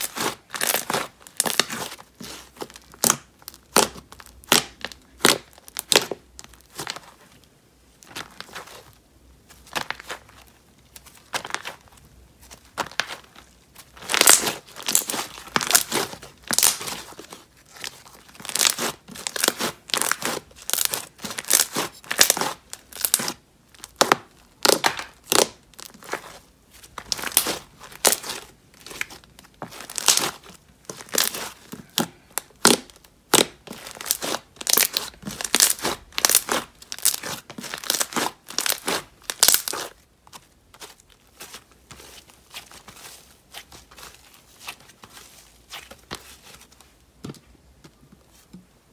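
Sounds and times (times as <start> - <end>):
slime squished by hand: 0.0 - 7.0, 26.9 - 40.0.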